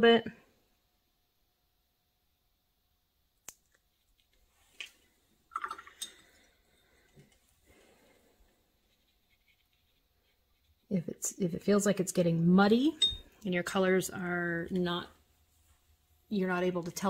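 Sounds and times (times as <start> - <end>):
brush dabbing paint on paper: 7.7 - 12.0.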